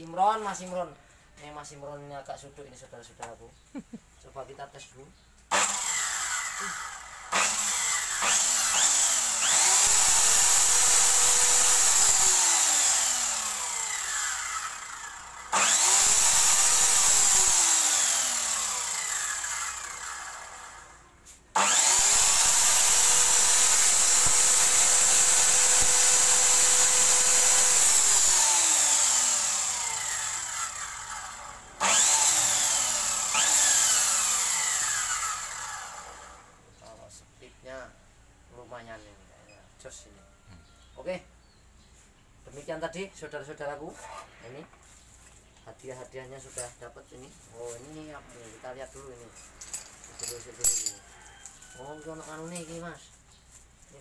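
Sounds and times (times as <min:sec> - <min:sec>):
saw motor whining: 0:05.5 - 0:36.6.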